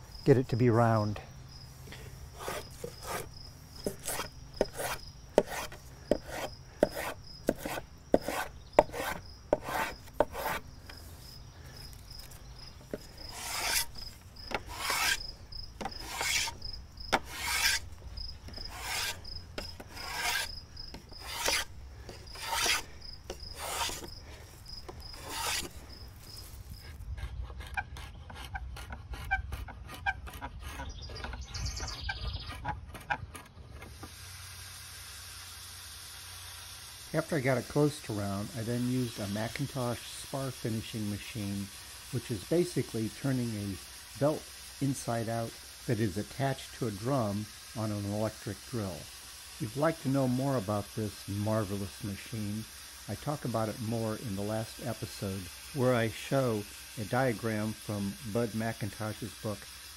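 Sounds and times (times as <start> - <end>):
hand plane shaving wood: 2.4 - 10.6, 12.3 - 15.2, 15.8 - 17.9, 18.5 - 24.2, 25.1 - 25.8.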